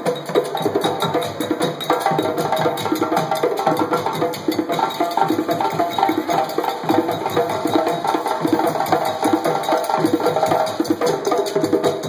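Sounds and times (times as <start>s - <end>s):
barrel drums played with sticks: 0.0s - 12.0s.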